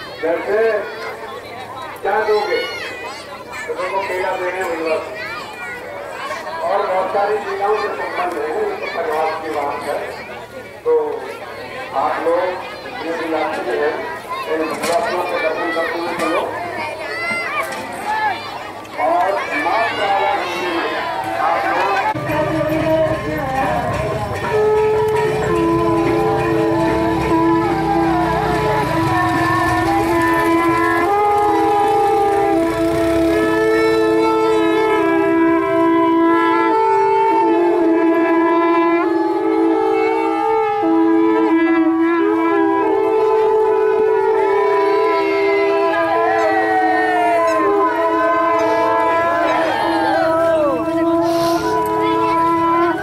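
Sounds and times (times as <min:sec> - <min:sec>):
murmur of crowd voices: 0:00.0 - 0:53.0
wind instrument held notes: 0:14.8 - 0:53.0
steady drone: 0:22.0 - 0:35.9.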